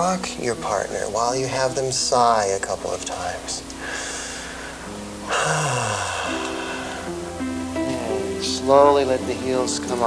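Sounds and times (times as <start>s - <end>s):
soft guitar music: 0.0s - 10.0s
person sighing: 3.8s - 8.2s.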